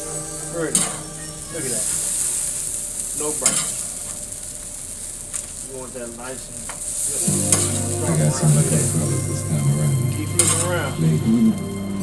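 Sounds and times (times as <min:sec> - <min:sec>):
patties sizzling on a grill: 0:00.0 - 0:11.8.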